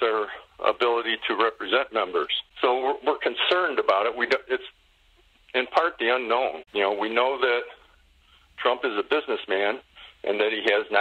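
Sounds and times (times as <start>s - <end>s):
man speaking into a microphone: 0.0s - 4.7s, 5.5s - 7.9s, 8.6s - 11.0s.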